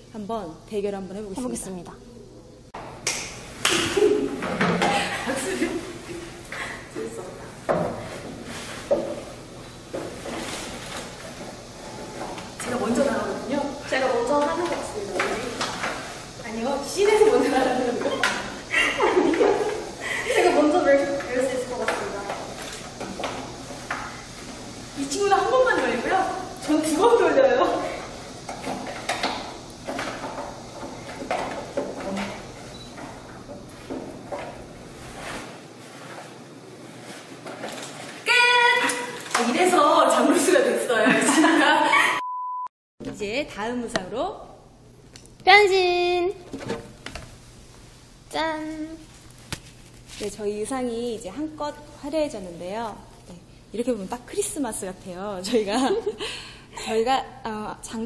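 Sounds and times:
fabric rustling: 8.0s - 8.9s, 34.9s - 38.2s, 48.8s - 50.8s.

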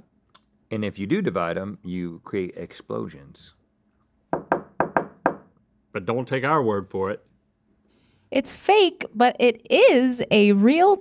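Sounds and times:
sharp knocks: 4.3s - 5.5s.

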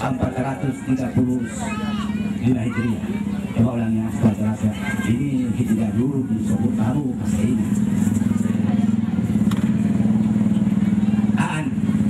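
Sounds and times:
small engine running steadily: 0.0s - 12.0s.

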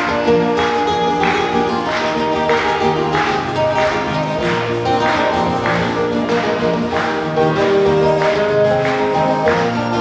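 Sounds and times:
acoustic guitars playing: 0.0s - 10.0s.

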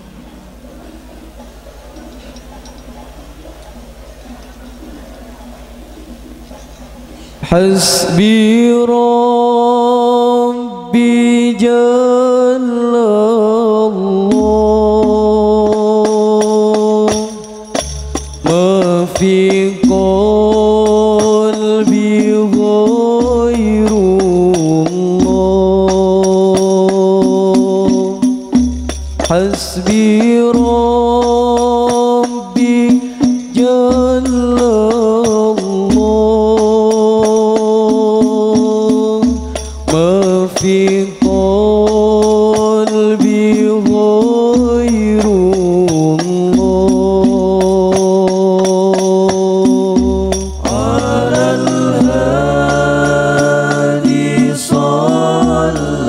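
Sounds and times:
men chanting in unison: 7.4s - 17.4s, 18.4s - 28.6s, 29.2s - 56.0s
frame drum strikes: 14.3s - 56.0s.

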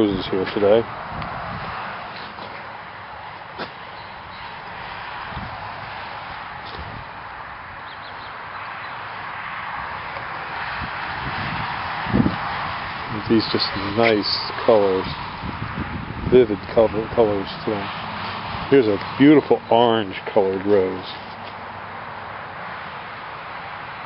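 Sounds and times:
outdoor background hiss: 0.0s - 24.0s.

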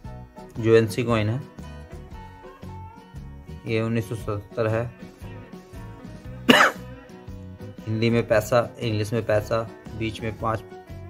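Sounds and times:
background music: 0.0s - 11.0s
man coughing: 6.5s - 6.9s.

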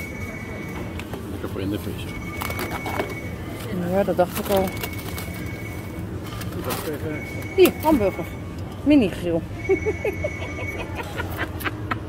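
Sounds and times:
refrigerator hum: 0.0s - 12.0s
plastic trays crinkling: 4.1s - 7.8s.

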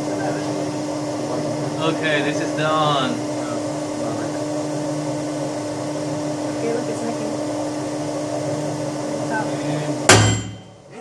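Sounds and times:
testing machine humming: 0.0s - 11.0s.

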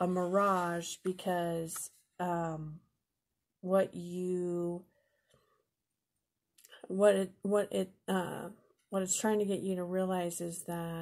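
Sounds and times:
woman speaking: 0.0s - 2.9s, 3.6s - 4.9s, 6.7s - 11.0s.

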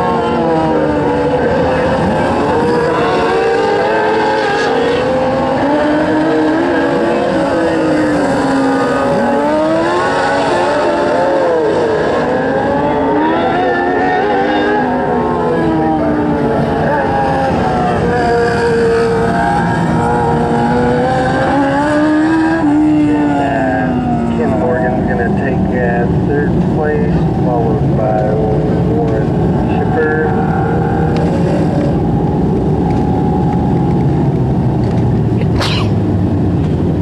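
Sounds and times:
race car engines accelerating: 0.0s - 37.0s.

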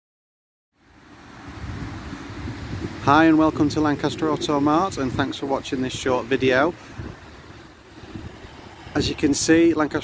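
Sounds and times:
low outdoor rumble: 0.9s - 10.0s
person speaking: 3.0s - 6.8s.

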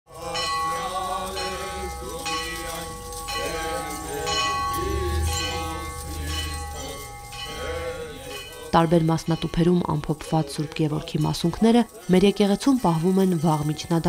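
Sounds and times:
church bell ringing: 0.1s - 11.7s
voices: 0.1s - 14.0s.

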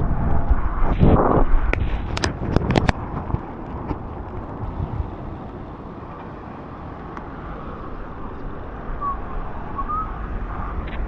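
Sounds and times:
bicycle tyres hissing on wet road: 0.0s - 11.0s
wind buffeting microphone: 0.0s - 11.0s.

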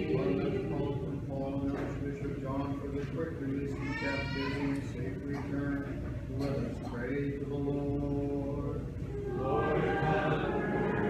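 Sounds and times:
voices chanting sustained notes: 0.0s - 1.2s, 9.1s - 11.0s.

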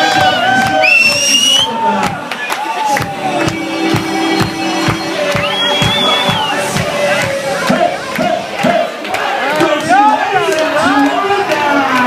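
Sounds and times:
music: 0.0s - 10.0s
crowd shouting and chanting: 0.0s - 12.0s.

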